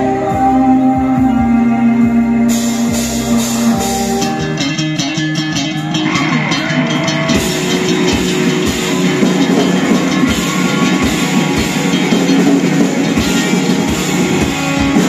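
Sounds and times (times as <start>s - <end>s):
electric guitar notes: 0.0s - 15.0s
rock band playing: 0.0s - 15.0s.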